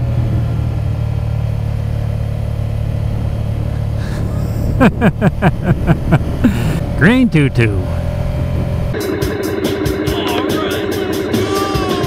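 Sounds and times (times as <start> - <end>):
motorcycle rumble: 0.0 - 12.0
music with quick beat: 9.0 - 12.0.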